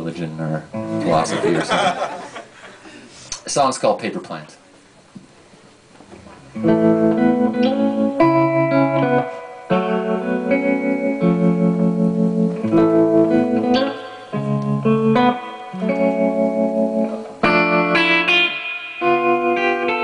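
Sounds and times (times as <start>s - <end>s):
electric guitar chords: 0.7s - 2.1s, 6.1s - 20.0s.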